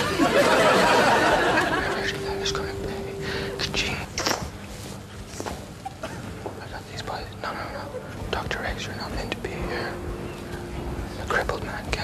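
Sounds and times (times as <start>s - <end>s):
people whispering: 1.6s - 5.6s, 6.4s - 12.0s.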